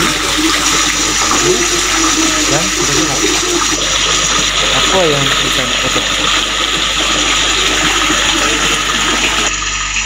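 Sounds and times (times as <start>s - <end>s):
running water: 0.0s - 10.0s.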